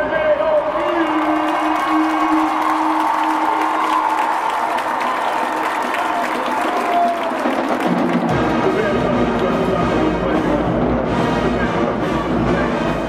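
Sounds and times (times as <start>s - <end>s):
crowd applauding and cheering: 0.0s - 9.7s
marching band playing: 1.7s - 13.0s.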